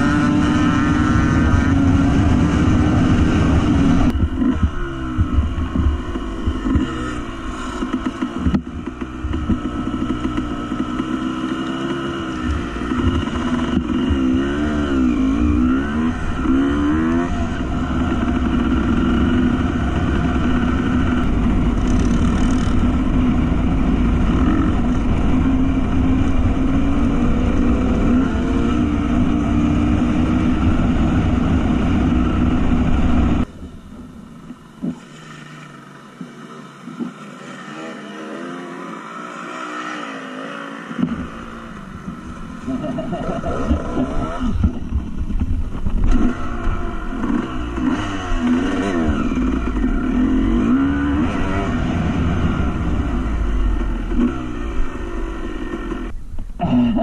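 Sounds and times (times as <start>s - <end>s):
dirt bike engine revving: 0.0s - 33.5s, 34.8s - 57.0s.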